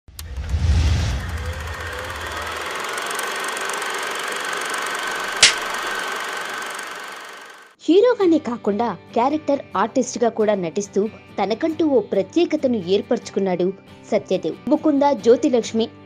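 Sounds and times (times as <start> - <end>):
sharp click: 5.4 - 5.8.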